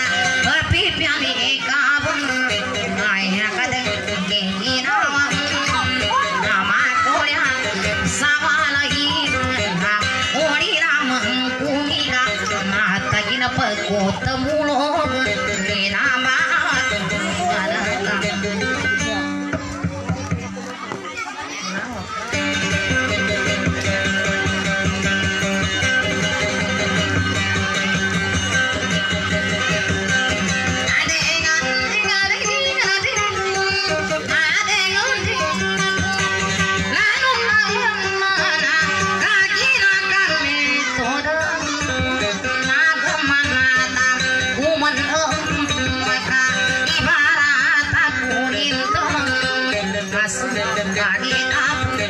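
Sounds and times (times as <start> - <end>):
woman singing: 0.0 - 18.6, 30.9 - 52.0
acoustic guitar plucked melody: 0.0 - 52.0.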